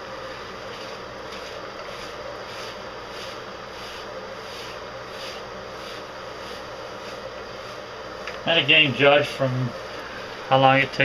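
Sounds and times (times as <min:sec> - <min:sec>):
steady background hum: 0:00.0 - 0:11.0
fingers rubbing lathered fur: 0:00.7 - 0:07.9.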